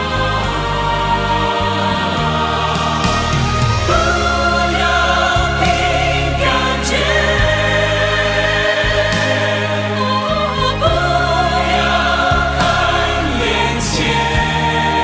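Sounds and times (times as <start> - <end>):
choir singing: 0.0 - 15.0
instrumental accompaniment: 0.0 - 15.0.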